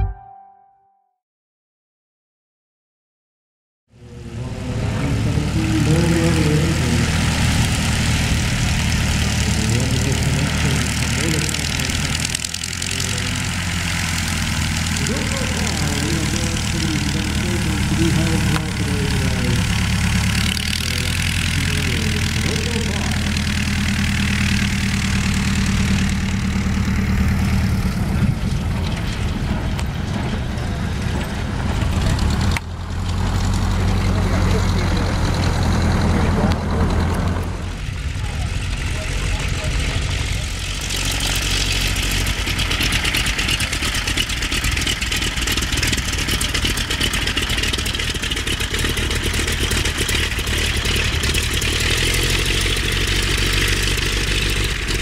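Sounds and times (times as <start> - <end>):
biplane engines droning: 3.9 - 55.0.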